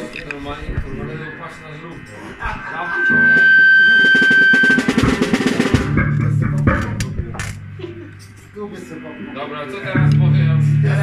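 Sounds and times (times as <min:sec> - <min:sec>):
drum and cymbal hits: 0:02.0 - 0:08.7
sustained high guitar note: 0:02.6 - 0:11.0
low bass note: 0:02.7 - 0:08.3, 0:09.8 - 0:11.0
fast drum roll: 0:03.2 - 0:07.3.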